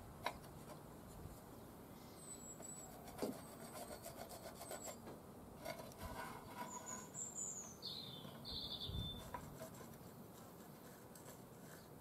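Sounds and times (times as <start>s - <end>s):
small birds chirping: 1.5s - 3.6s, 6.4s - 10.2s
pencil scratching on metal: 2.6s - 7.8s, 9.0s - 12.0s.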